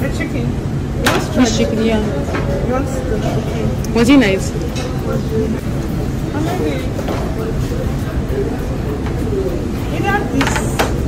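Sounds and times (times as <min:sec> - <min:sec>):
indistinct low voices: 0:00.0 - 0:11.0
low room rumble: 0:00.0 - 0:11.0.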